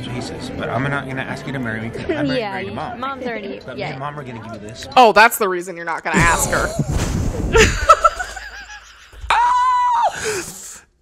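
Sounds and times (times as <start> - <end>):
people laughing: 6.2 - 9.2.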